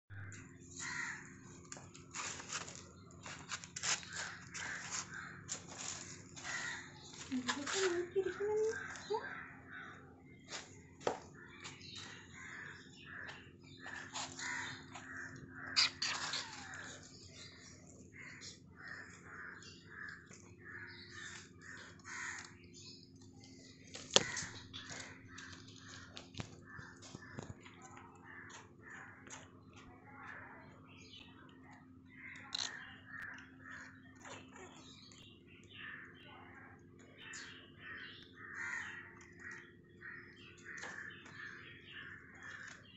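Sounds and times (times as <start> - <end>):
twigs rustling and snapping: 21.2 - 26.8.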